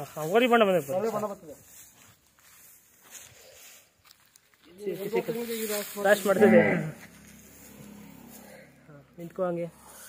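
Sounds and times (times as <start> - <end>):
faint hiss: 4.8 - 6.4.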